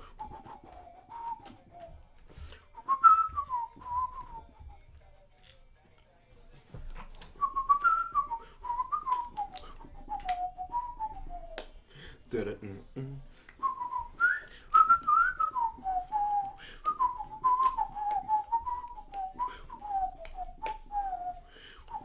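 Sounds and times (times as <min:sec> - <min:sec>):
man whistling a melody: 0:00.0 - 0:05.0, 0:07.2 - 0:11.9, 0:13.5 - 0:22.0.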